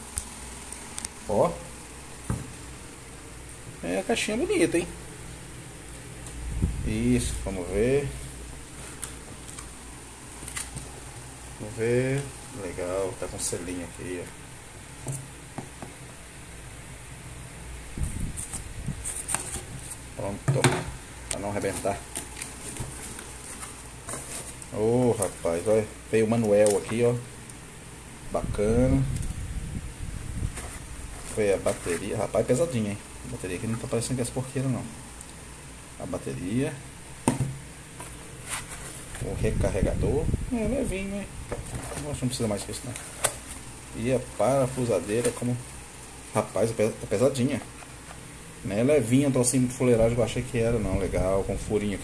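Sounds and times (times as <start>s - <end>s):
low steady hum: 0.0s - 52.0s
cardboard scraping and rustling: 18.0s - 20.8s, 21.5s - 25.7s, 30.4s - 32.5s, 37.4s - 39.5s, 41.5s - 45.7s.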